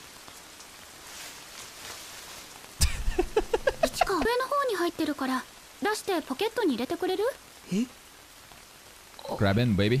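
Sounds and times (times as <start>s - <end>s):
steady rain hiss: 0.0s - 10.0s
girl speaking: 3.8s - 7.4s.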